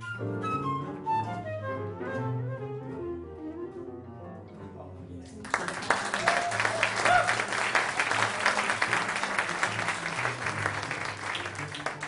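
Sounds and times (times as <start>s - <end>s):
audience applauding: 5.4s - 12.0s
audience cheering: 5.6s - 12.0s.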